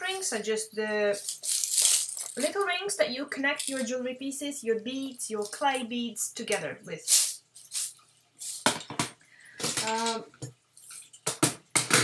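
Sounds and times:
metal boxes clinking: 1.1 - 2.7.

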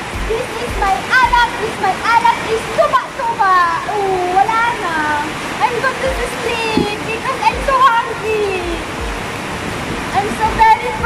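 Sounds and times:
person talking indistinctly: 0.0 - 9.2, 10.2 - 11.0
steady rushing noise: 0.0 - 11.0.

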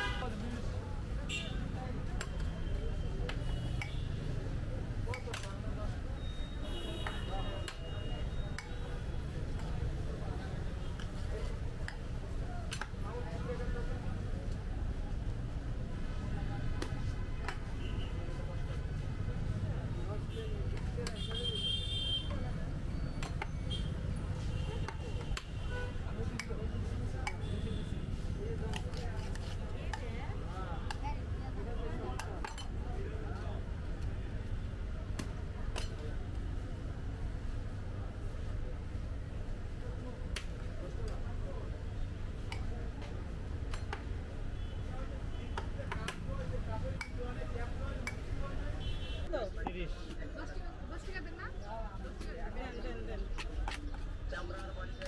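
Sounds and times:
low traffic rumble: 0.0 - 55.0.

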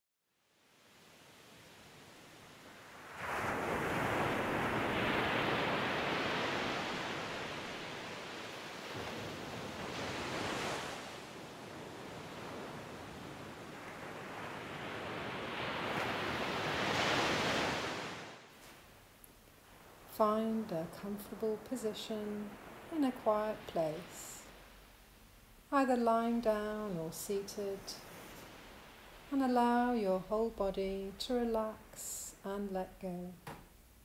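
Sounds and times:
waves washing onto shore: 0.7 - 18.9, 19.5 - 25.1, 27.3 - 30.0.

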